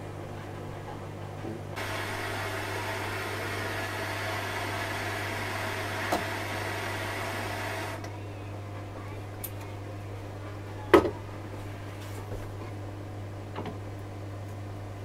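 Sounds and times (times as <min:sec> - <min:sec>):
blowtorch hissing: 0:01.8 - 0:08.0.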